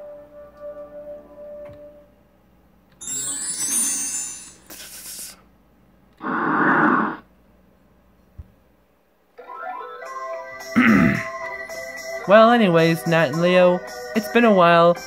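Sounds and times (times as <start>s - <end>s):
music with steady notes: 0.0s - 2.2s, 3.0s - 4.7s, 9.4s - 15.0s.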